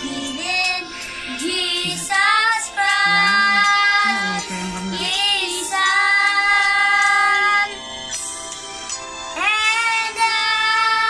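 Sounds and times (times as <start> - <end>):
children singing: 0.0 - 7.8.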